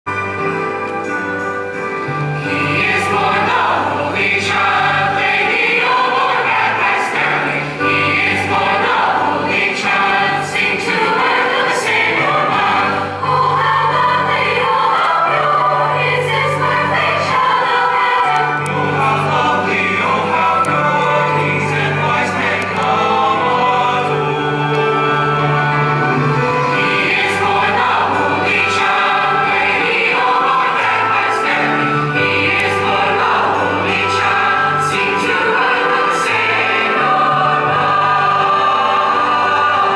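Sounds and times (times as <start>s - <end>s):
jazz choir singing in harmony: 0.2s - 39.9s.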